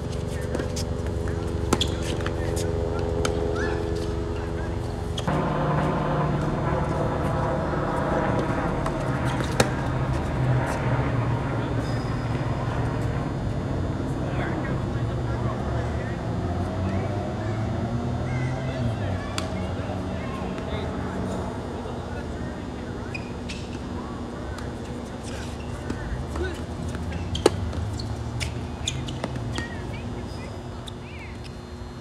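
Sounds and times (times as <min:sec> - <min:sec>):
low rumble and hum: 0:00.0 - 0:32.0.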